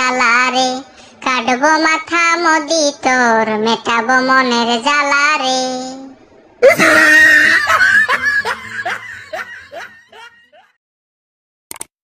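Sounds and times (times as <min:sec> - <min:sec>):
person laughing: 0:06.6 - 0:10.8.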